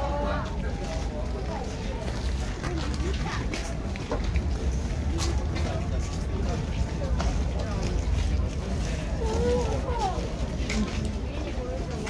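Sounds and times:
steady low rumble: 0:00.0 - 0:11.8
people talking: 0:00.0 - 0:12.0.

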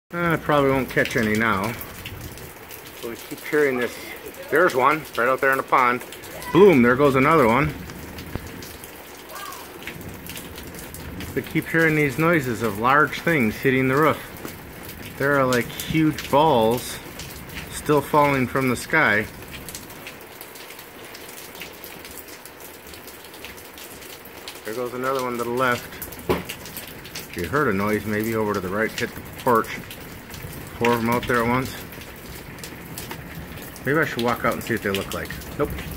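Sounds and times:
hail pattering: 0:00.1 - 0:35.9
hailstone knocking on roof: 0:26.2 - 0:26.6.

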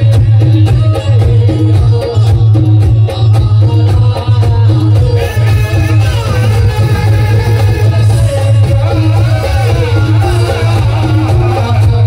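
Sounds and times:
drum accompaniment: 0:00.0 - 0:12.0
harmonium: 0:00.0 - 0:12.0
man singing melismatic lines: 0:00.0 - 0:12.0.

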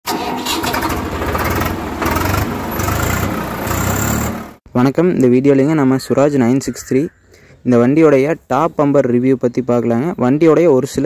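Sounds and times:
engine running loud: 0:00.1 - 0:04.6.

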